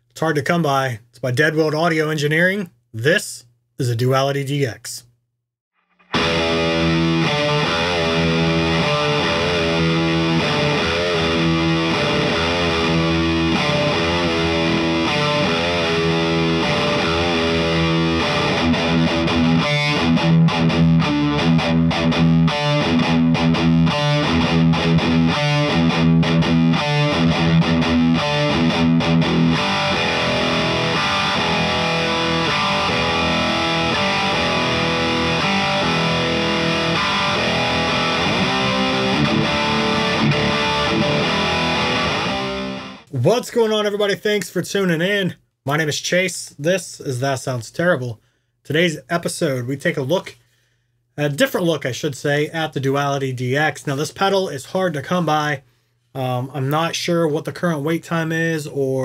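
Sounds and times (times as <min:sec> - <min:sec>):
distorted electric guitar: 0:05.8 - 0:43.1.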